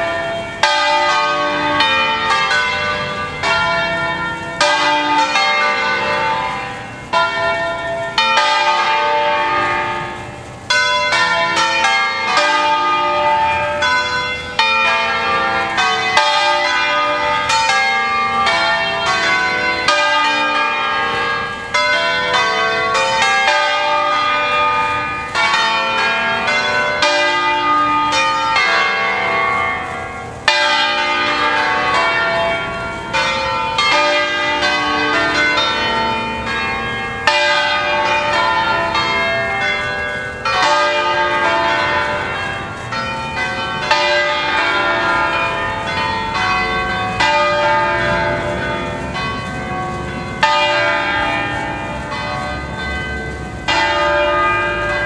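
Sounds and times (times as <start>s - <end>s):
church bells ringing: 0.0s - 55.0s.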